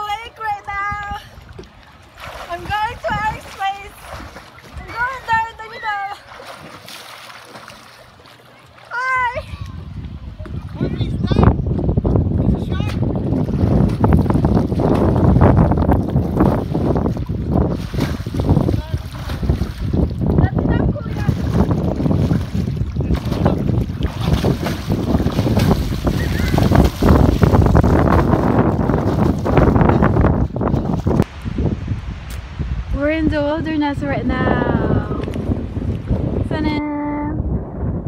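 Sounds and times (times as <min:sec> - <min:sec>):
wind noise on microphone: 0:00.0 - 0:06.0, 0:09.0 - 0:38.0
swimmer splashing in water: 0:01.5 - 0:09.3, 0:21.0 - 0:30.0.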